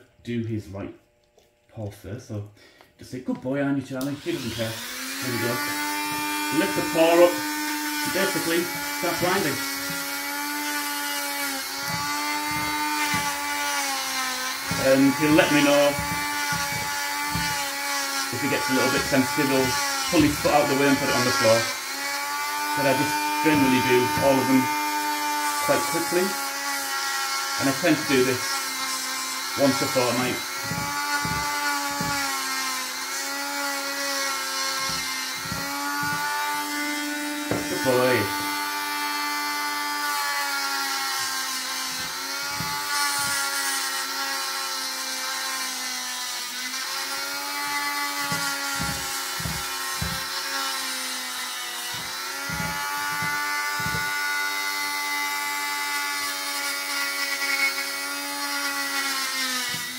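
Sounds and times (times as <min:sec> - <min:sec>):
rotary tool grinding nails: 0:04.0 - 0:59.9.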